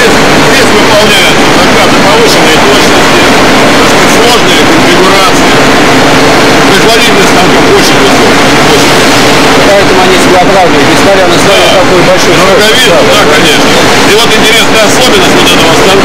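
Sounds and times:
indistinct voices: 0.0 - 16.0
lathe running: 0.0 - 16.0.

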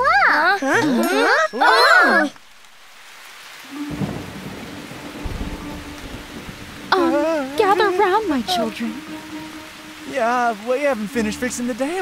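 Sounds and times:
rain hissing: 0.0 - 12.0
low thunder roll: 3.8 - 9.0.

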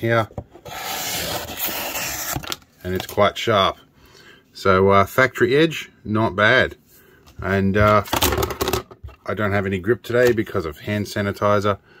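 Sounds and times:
knife slicing through card: 0.7 - 2.6.

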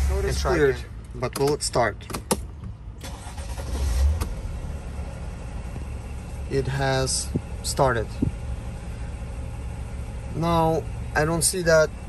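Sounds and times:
diesel engine starting and idling: 0.0 - 12.0.

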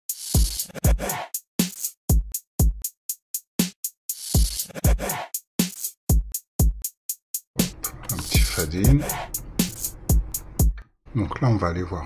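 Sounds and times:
deep electronic kick drums: 2.1 - 2.9, 6.1 - 6.9, 7.6 - 10.8.

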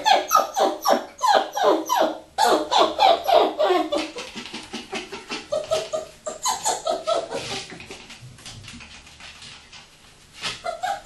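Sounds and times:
puppy yapping: 0.0 - 7.7, 10.6 - 11.0.

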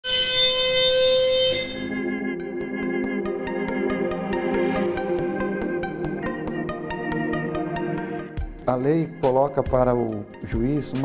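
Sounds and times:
electronic alarm tone: 0.0 - 6.2
sustained synthesizer chords: 0.0 - 8.6.

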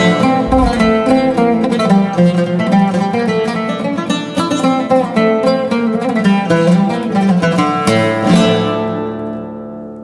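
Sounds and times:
oud plucked notes: 0.0 - 6.2.

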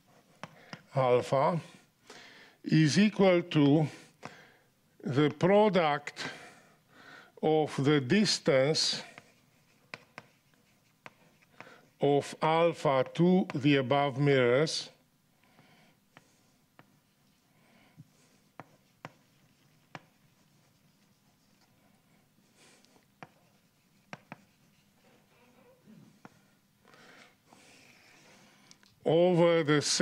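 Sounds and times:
chalk tapping and writing on blackboard: 0.0 - 0.9, 5.2 - 5.5, 8.7 - 12.0, 13.0 - 13.8, 15.4 - 26.6.

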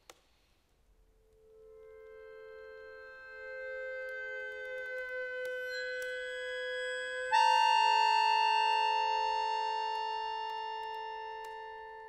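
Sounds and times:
accordion sustained chords: 1.5 - 12.0.

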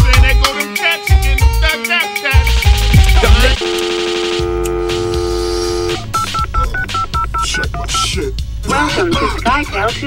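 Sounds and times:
telephone dial tone: 3.3 - 6.5.

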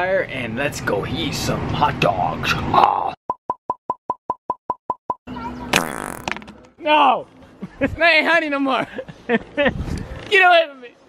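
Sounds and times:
quick short pops: 5.8 - 6.5.

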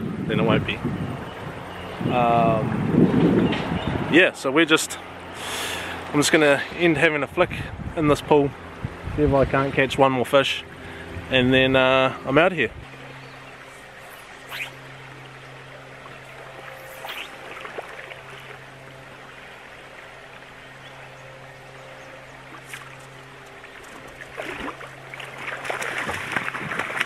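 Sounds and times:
steady low hum: 0.0 - 27.0
river water trickling over stones: 13.0 - 27.0.

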